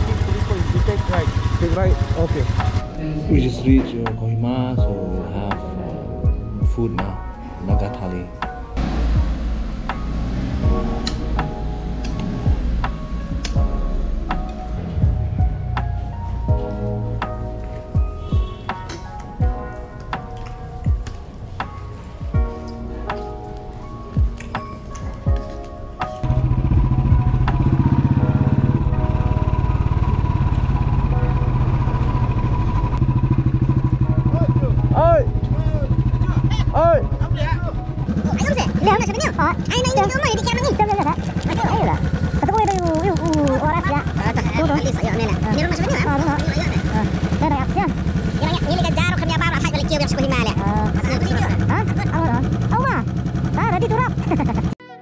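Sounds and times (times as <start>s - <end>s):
motorcycle engine running: 0.0s - 3.6s, 26.2s - 54.8s
music: 0.0s - 55.0s
people talking: 38.3s - 53.0s, 53.6s - 54.5s.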